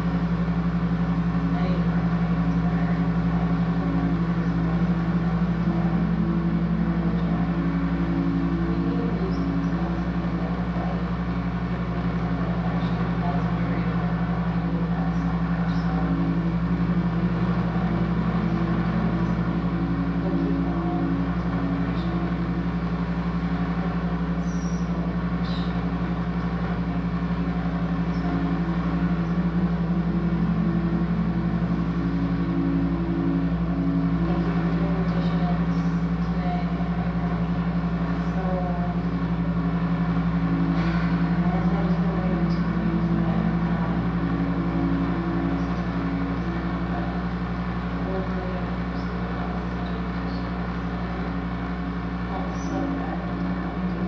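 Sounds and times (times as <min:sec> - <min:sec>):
electronic drone music: 0:00.0 - 0:54.0
high pulsing tone: 0:00.0 - 0:54.0
steady low hum: 0:00.0 - 0:54.0.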